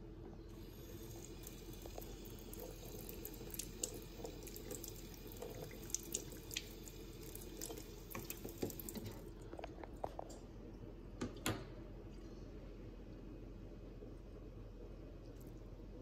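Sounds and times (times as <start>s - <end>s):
faucet running into metal sink: 0.6s - 9.2s
water dripping: 0.6s - 9.4s.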